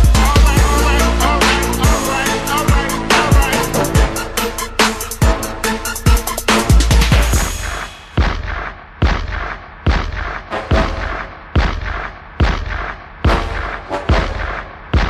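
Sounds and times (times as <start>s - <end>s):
hip-hop beat with booming bass: 0.0s - 15.0s.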